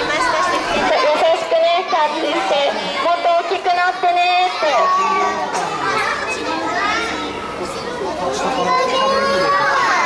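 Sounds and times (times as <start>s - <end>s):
young children chattering: 0.0s - 10.0s.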